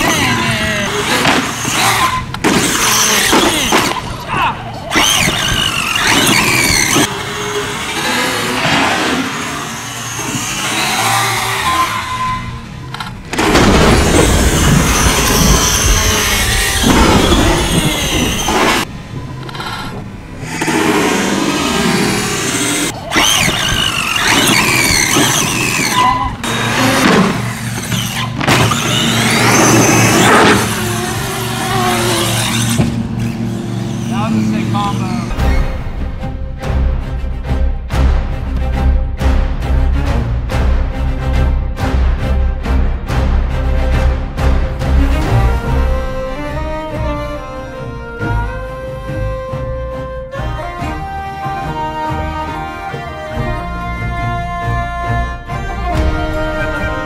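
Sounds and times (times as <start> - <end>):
electric motor whining: 0.0 - 35.8
background music: 7.1 - 57.0.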